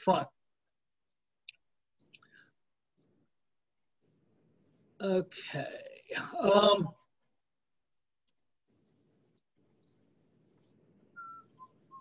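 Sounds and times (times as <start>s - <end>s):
faint microphone hiss: 8.2s - 12.0s
short whistled notes: 11.1s - 12.0s.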